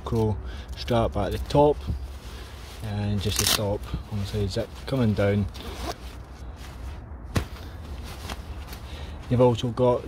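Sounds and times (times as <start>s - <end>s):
low steady rumble: 0.0s - 10.0s
fabric rustling: 2.0s - 10.0s.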